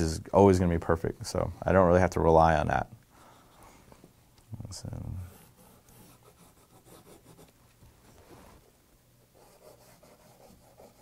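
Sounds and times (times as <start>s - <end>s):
pencil scratching on paper: 5.2s - 7.5s, 9.4s - 11.0s.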